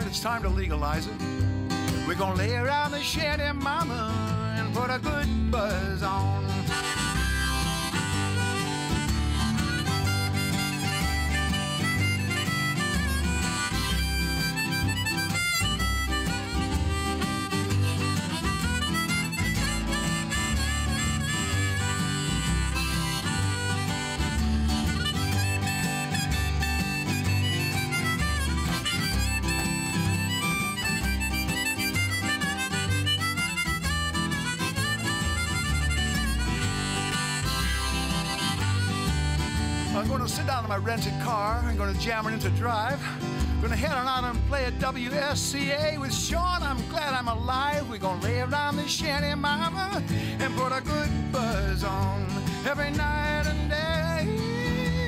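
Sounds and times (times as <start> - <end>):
plucked double bass: 0.0 - 42.8, 50.5 - 55.0
strummed acoustic guitar: 0.0 - 55.0
harmonica solo: 6.1 - 55.0.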